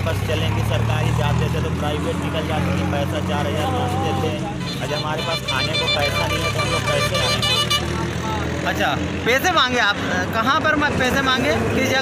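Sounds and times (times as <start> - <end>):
men talking: 0.0 - 12.0
roadside traffic: 0.0 - 12.0
pulsing vehicle horn: 4.5 - 8.1.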